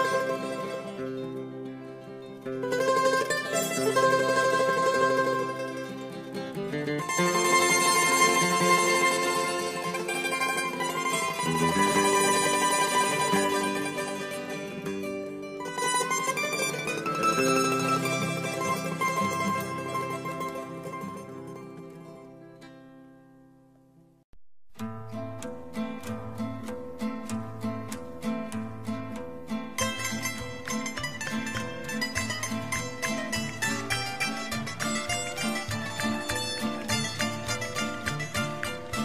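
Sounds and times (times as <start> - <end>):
folk music on plucked strings: 0.0 - 23.6, 24.8 - 39.0.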